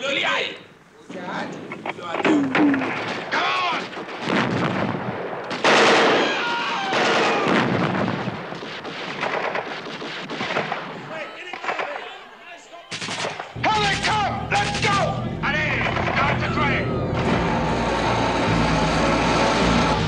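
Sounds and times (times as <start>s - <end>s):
gunfire: 1.6s - 12.2s, 12.9s - 16.6s
machine-gun fire: 2.7s - 12.0s, 12.9s - 18.9s
men shouting: 11.2s - 20.0s.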